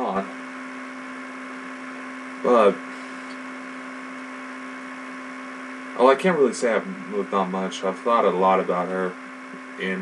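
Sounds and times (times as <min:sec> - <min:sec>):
electrical hum with hiss: 0:00.0 - 0:10.0.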